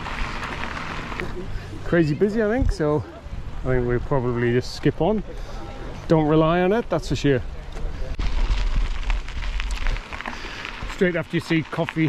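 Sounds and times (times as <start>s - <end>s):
bike tyres crunching over gravel: 0.0s - 1.4s, 7.9s - 12.0s
wind rumble on microphone: 8.2s - 10.9s.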